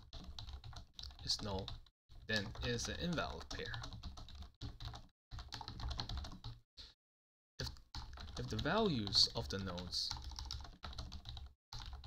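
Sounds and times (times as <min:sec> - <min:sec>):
typing on computer keyboard: 0:00.0 - 0:06.6, 0:07.6 - 0:12.0.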